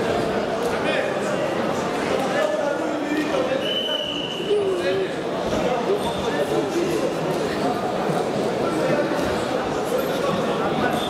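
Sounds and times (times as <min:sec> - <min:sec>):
murmur of room: 0:00.0 - 0:11.0.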